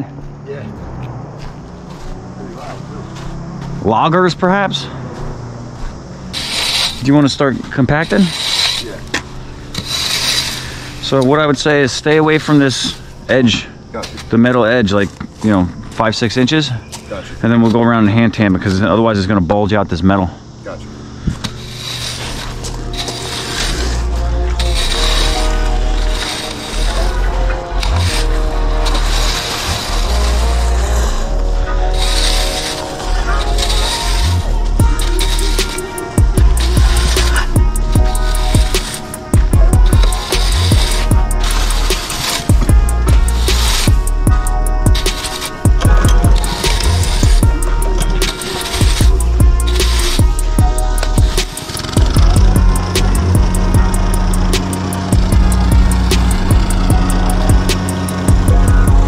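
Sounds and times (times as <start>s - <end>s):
music with heavy bass beat: 21.4s - 59.0s.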